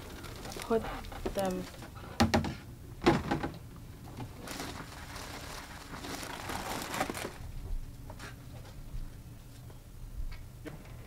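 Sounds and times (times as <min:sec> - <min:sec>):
cellophane crinkling: 0:00.0 - 0:00.8, 0:04.2 - 0:07.5.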